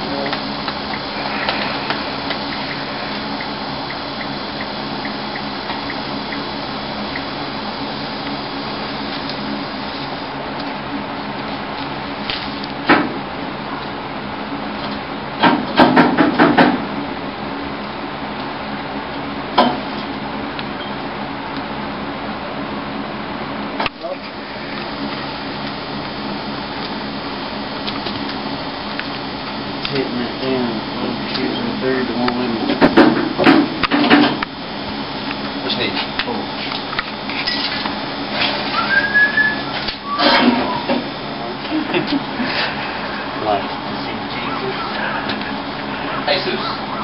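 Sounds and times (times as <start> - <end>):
steady drone: 0.0 - 15.8, 16.8 - 47.0
steady noisy background: 0.0 - 47.0
sharp knocks on car: 15.4 - 16.8
short whistled note: 38.7 - 40.9.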